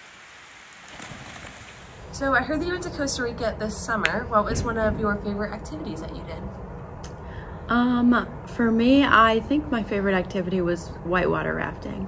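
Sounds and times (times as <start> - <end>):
rain falling on a pool: 0.0 - 2.0.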